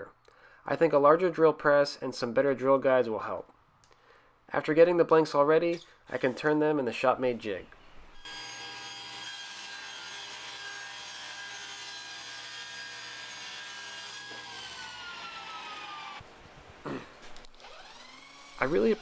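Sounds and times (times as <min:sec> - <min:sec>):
table saw whining: 0:08.2 - 0:16.2, 0:17.4 - 0:19.0.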